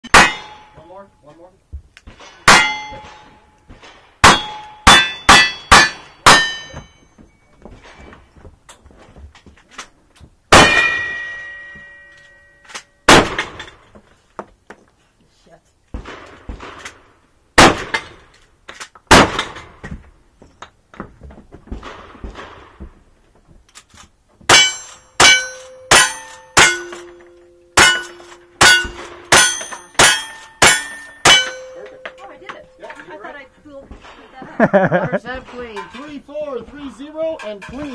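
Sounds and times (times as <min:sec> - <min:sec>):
steel target ringing: 0:00.0 - 0:01.1, 0:02.5 - 0:03.6, 0:04.2 - 0:07.2, 0:10.5 - 0:13.8, 0:24.5 - 0:33.0
gunshots: 0:02.1 - 0:06.7, 0:10.5 - 0:11.4, 0:13.1 - 0:13.8, 0:16.0 - 0:18.2, 0:19.1 - 0:19.8, 0:21.8 - 0:22.8.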